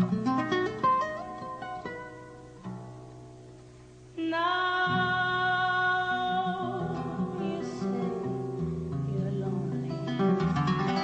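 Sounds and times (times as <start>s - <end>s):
classical guitar played solo: 0.0s - 4.1s, 4.9s - 11.0s.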